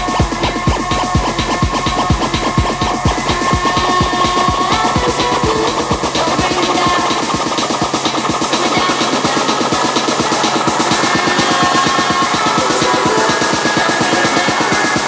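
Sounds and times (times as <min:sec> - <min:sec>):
electronic dance music: 0:00.0 - 0:15.0.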